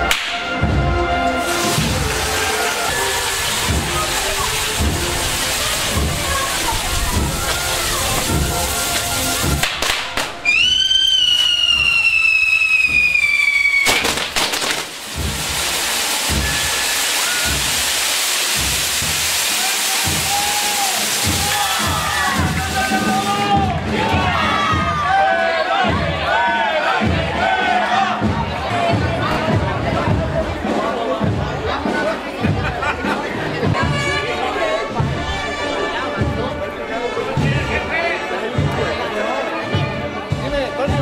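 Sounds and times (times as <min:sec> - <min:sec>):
fireworks crackling: 0:01.2 - 0:23.8
fireworks bangs: 0:01.4 - 0:23.3
whistling firework: 0:09.8 - 0:22.2.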